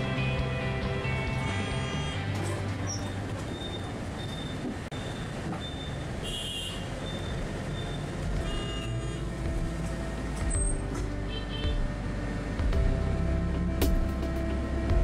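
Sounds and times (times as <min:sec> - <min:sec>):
traffic and road noise: 0:00.0 - 0:15.0.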